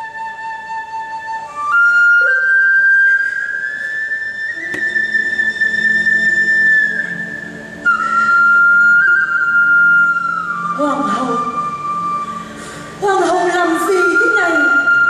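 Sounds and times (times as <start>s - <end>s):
flute playing slow held notes: 0.0s - 15.0s
low sustained accompaniment: 0.0s - 15.0s.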